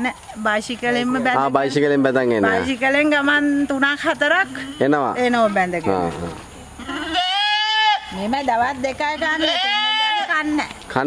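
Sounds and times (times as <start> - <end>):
goat bleating: 4.5 - 5.3, 6.8 - 8.2, 9.2 - 10.6.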